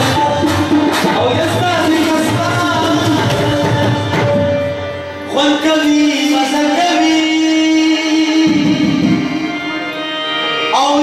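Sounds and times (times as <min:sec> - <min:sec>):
hand drum: 0:00.0 - 0:05.0
harmoniums: 0:00.0 - 0:11.0
plucked string instrument: 0:00.0 - 0:11.0.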